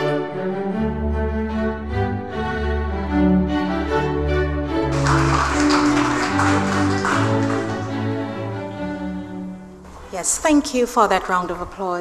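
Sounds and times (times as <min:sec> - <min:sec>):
music with held string notes: 0:00.0 - 0:09.9
audience applauding: 0:04.9 - 0:08.4.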